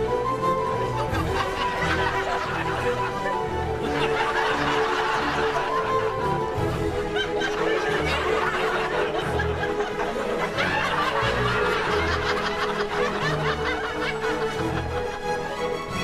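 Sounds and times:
light background music: 0:00.0 - 0:16.0
canned laugh track: 0:07.1 - 0:15.0.

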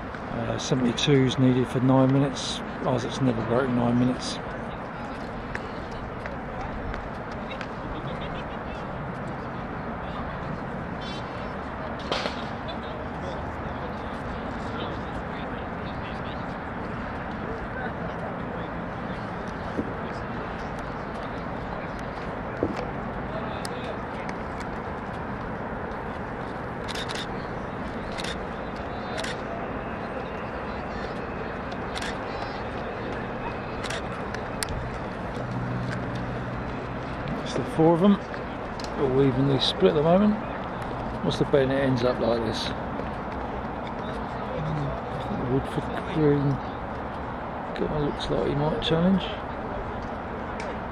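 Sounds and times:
distant voices: 0:00.0 - 0:50.9
steady background noise: 0:00.0 - 0:50.9.

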